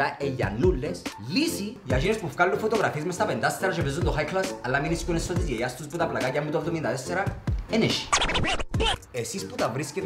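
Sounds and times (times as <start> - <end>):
hip-hop backing track: 0.0 - 10.0
turntable scratching: 8.0 - 9.0.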